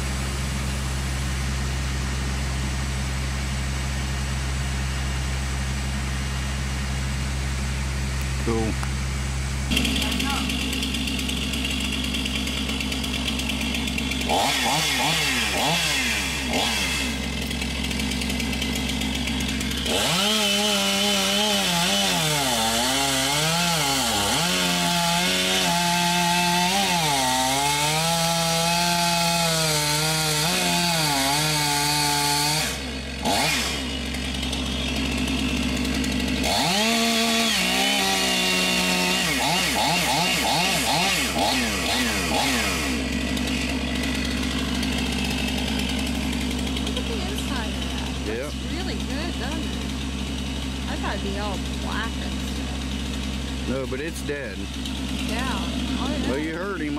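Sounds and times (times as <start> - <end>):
chainsaw cutting wood: 9.6 - 56.9.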